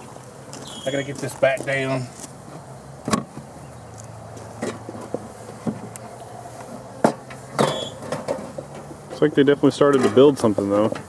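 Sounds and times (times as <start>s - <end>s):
honey bees humming: 0.0s - 11.0s.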